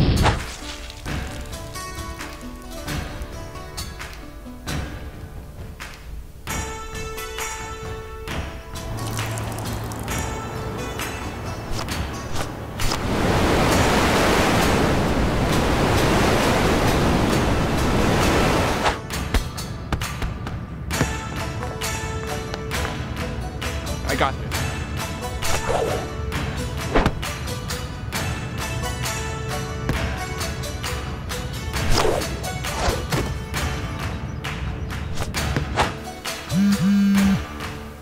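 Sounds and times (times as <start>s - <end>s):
background music: 0.0s - 38.0s
gusting wind rush: 4.9s - 23.9s
whip-like whoosh: 18.8s - 19.0s, 25.4s - 26.1s, 26.9s - 27.2s, 31.8s - 33.2s, 35.1s - 36.0s.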